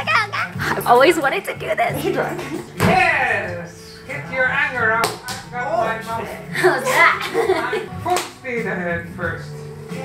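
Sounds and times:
hands slapping clay: 0:05.0 - 0:05.4.

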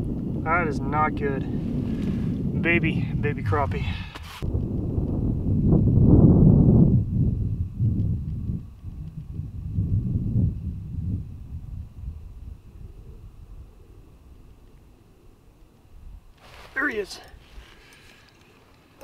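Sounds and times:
wind buffeting microphone: 0:00.0 - 0:19.0
faint high whine: 0:05.2 - 0:19.0.

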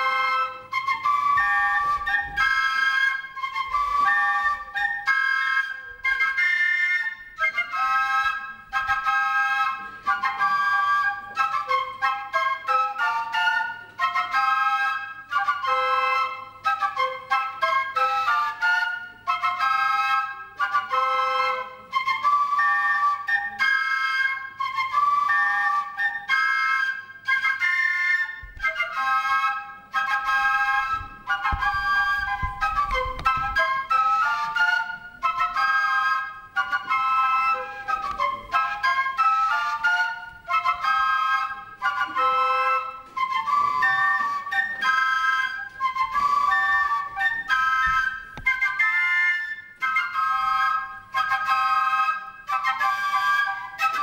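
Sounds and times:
flutes playing a melody: 0:00.0 - 0:54.0.

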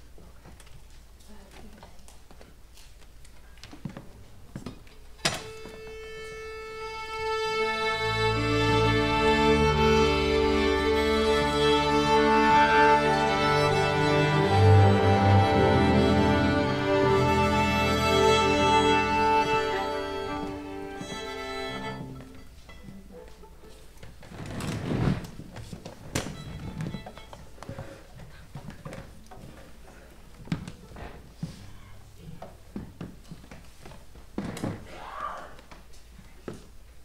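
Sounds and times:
string orchestra holding a chord: 0:06.8 - 0:22.4.

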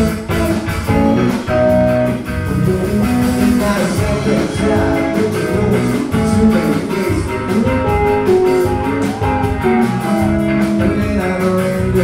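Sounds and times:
bass guitar: 0:00.0 - 0:12.0
electric guitar lead: 0:00.0 - 0:12.0
steady drum beat: 0:00.0 - 0:12.0.

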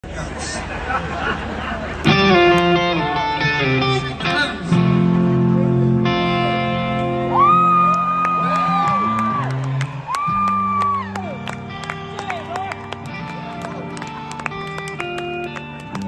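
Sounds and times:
crowd noise: 0:00.0 - 0:16.0
sustained keyboard chords: 0:02.0 - 0:07.4.

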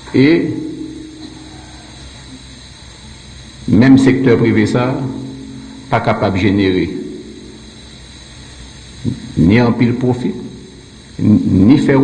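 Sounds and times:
steady background hum and hiss: 0:00.0 - 0:12.0.

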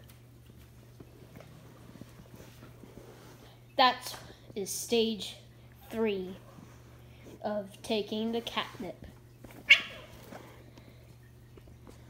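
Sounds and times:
cats scuffling: 0:00.0 - 0:04.4, 0:08.1 - 0:12.0
cat crying: 0:09.7 - 0:10.2.

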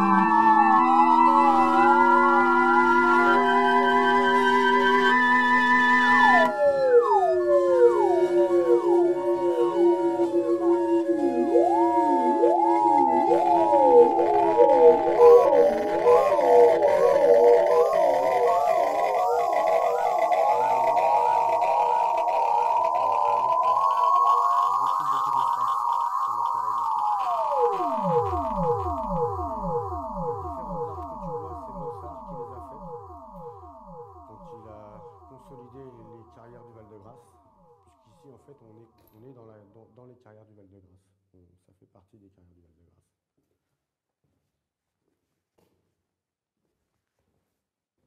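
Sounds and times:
downward pitch sweeps: 0:00.0 - 0:37.3
wavering gliding electronic tones: 0:00.0 - 0:37.3.

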